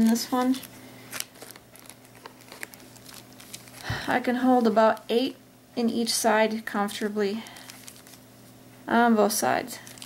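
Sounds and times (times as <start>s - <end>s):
plastic baggies crinkling: 0.0s - 5.1s, 7.0s - 8.2s, 9.7s - 10.0s.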